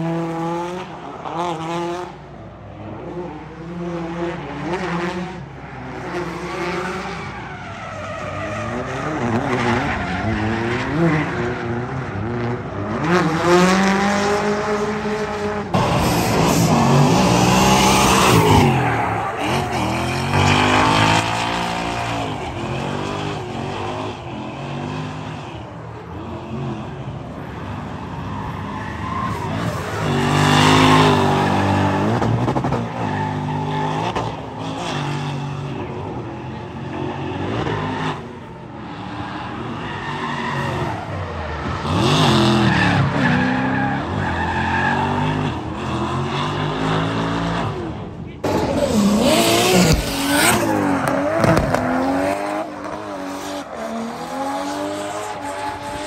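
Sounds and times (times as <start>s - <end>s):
car engines revving hard: 0.0s - 56.0s.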